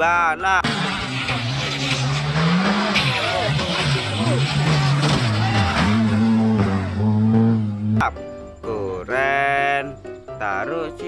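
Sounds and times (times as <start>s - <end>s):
car engine revving hard: 0.6s - 8.0s.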